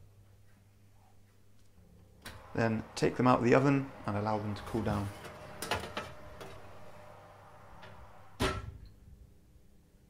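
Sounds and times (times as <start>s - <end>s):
loud metallic clunk: 4.6s - 8.8s
baking tray knocks and scrapes: 4.9s - 6.7s.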